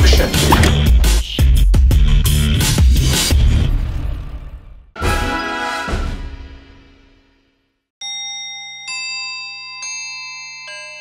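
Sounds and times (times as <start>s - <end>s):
bell-like chime notes: 8.0s - 11.0s.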